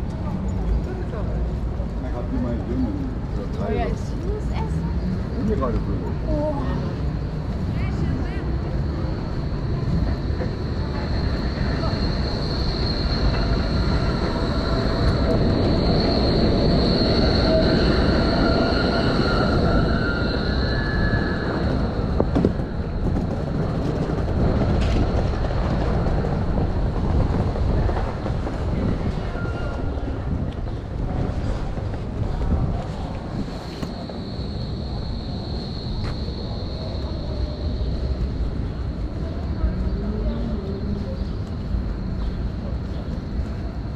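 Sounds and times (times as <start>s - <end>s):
rail vehicle rumbling past: 0.0s - 43.9s
wheels squealing on rails: 2.2s - 43.9s.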